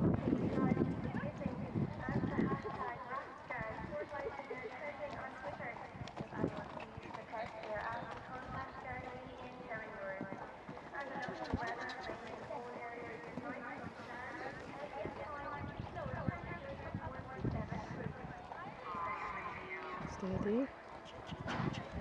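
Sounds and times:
horse hoofbeats on sand: 0.4s - 22.0s
chatter of voices: 0.7s - 22.0s.

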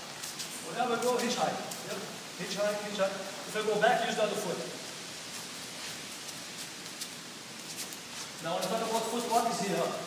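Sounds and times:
cloth rustling and feet on mats: 0.0s - 3.8s, 4.8s - 10.0s
room hiss: 0.0s - 10.0s.

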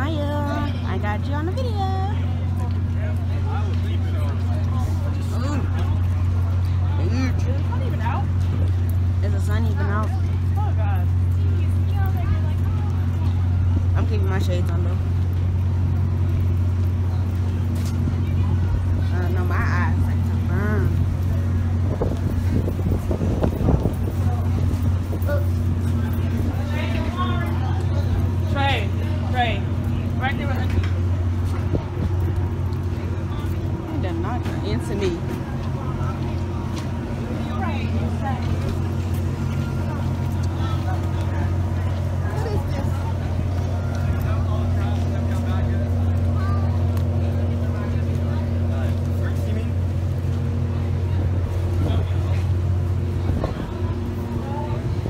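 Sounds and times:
faint voices: 0.0s - 55.0s
low engine hum: 0.0s - 55.0s.

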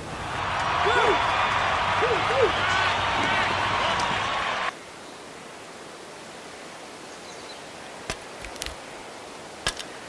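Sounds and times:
outdoor woodland hiss: 4.4s - 10.0s.

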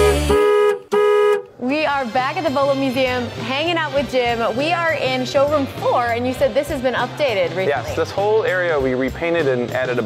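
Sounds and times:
car horn honks: 0.0s - 1.6s.

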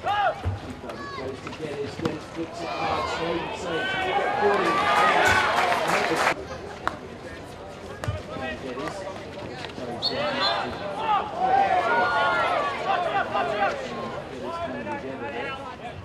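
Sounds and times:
men shouting and calling: 10.3s - 15.6s.

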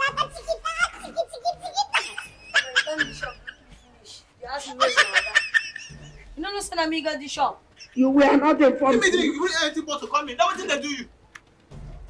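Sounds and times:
person laughing: 0.0s - 3.7s, 4.7s - 6.3s.

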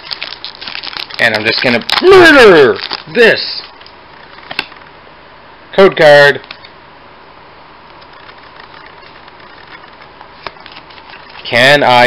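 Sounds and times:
trading cards rustling and clicking: 0.0s - 4.9s, 7.9s - 12.0s.

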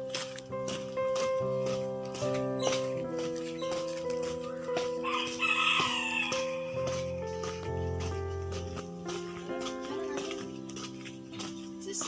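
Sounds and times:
soft background music: 0.0s - 12.0s
rooster crowing: 4.4s - 6.8s.

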